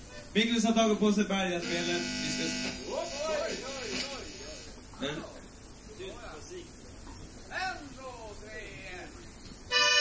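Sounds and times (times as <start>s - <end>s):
background noise floor: 0.0s - 10.0s.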